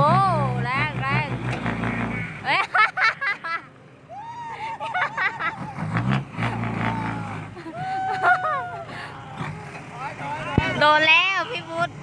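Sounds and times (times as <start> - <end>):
diesel machinery engine running: 0.0 - 2.9, 4.8 - 12.0
excited voices: 4.1 - 5.9, 6.6 - 11.9.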